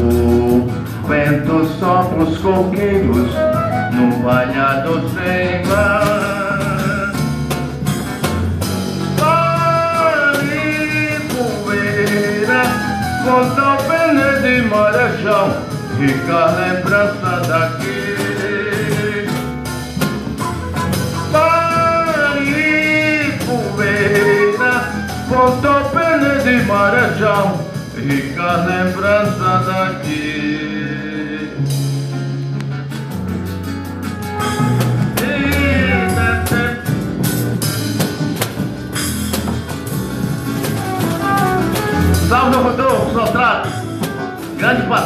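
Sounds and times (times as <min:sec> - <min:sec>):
person singing: 0:00.0 - 0:07.3, 0:09.2 - 0:19.5, 0:21.2 - 0:31.9, 0:35.1 - 0:36.9
acoustic guitar: 0:00.0 - 0:45.0
drum kit: 0:00.0 - 0:45.0
held melody line: 0:00.0 - 0:45.0.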